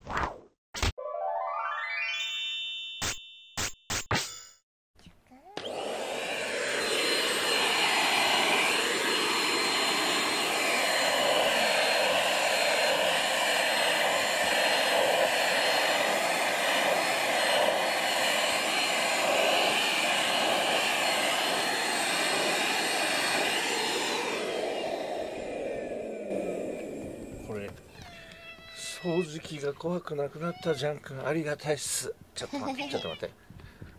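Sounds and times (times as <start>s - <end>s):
vacuum cleaner running: 5.5s - 28.0s
motor spinning down: 5.6s - 28.4s.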